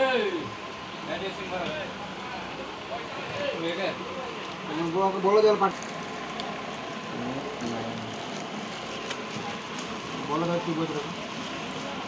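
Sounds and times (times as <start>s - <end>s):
plastic packaging crinkling: 5.6s - 12.0s.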